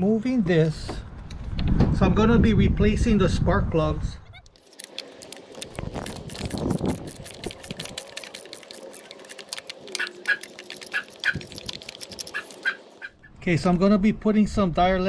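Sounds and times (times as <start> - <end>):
animal calls: 4.3 - 13.3
clicks and rattles of engine parts: 4.5 - 13.1.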